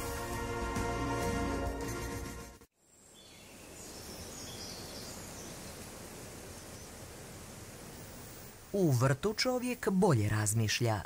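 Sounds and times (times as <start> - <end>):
background music: 0.0 - 2.7
steady outdoor hiss: 0.0 - 11.0.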